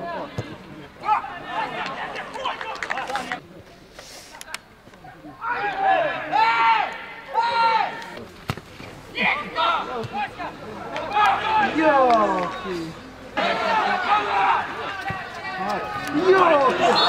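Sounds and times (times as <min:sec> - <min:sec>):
footballers shouting: 0:00.0 - 0:03.4, 0:05.3 - 0:08.2, 0:09.0 - 0:17.0.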